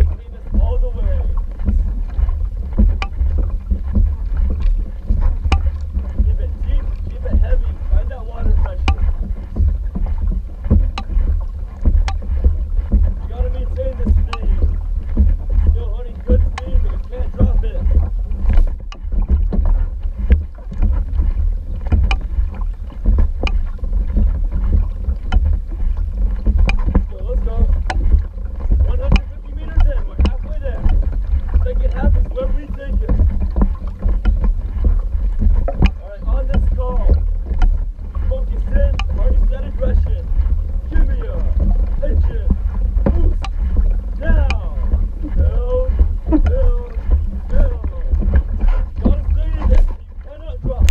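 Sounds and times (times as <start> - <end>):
paddle splashing water: 0.0 - 50.9
wind rumble on microphone: 0.0 - 50.9.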